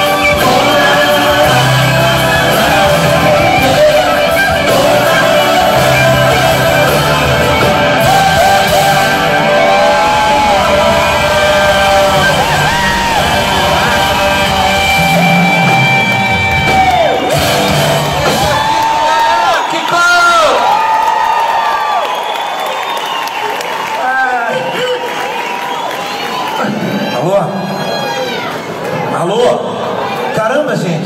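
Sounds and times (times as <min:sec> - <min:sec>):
electric guitar lead: 0:00.0 - 0:18.7
live rock band: 0:00.0 - 0:20.0.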